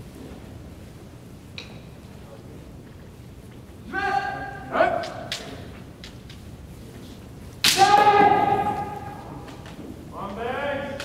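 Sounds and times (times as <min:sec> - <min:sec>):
bamboo swords clacking: 0:07.6 - 0:09.8
long drawn-out shout: 0:07.7 - 0:09.3.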